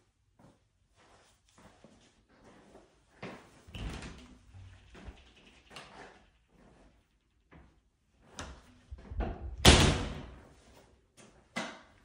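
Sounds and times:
glass shower door banging shut: 9.6 - 10.3.

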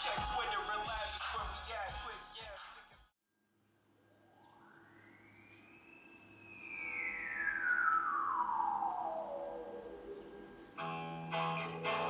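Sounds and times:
synthesizer tone swooping in pitch: 4.3 - 12.0.

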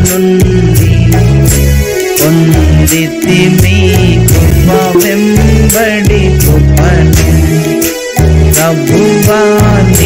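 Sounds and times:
electronic keyboard with beat: 0.0 - 10.0.

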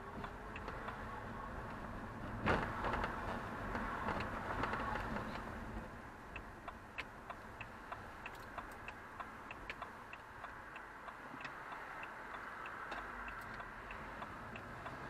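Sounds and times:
engine and tyre hum: 0.0 - 15.0
turn signal ticking: 0.0 - 15.0.

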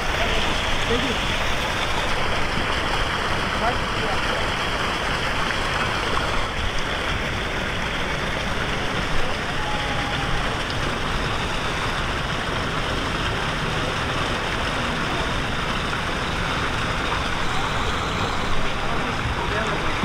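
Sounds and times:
water pouring into pool: 0.0 - 20.0.

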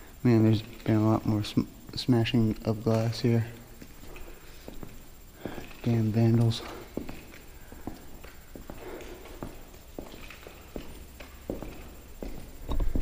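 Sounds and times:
footsteps on tiled floor: 3.8 - 13.0.

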